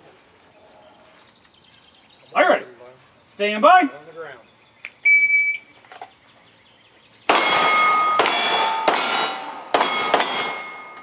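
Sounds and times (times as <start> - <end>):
pistol shots: 7.3 - 11.0
steel targets ringing: 7.3 - 11.0.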